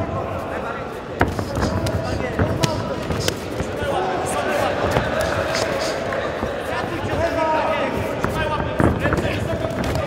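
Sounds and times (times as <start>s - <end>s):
crowd shouting: 3.7s - 8.0s.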